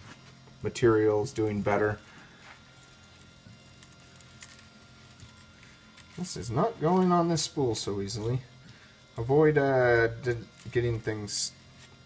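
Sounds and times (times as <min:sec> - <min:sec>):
printer stepper motors whining: 0:00.0 - 0:12.0.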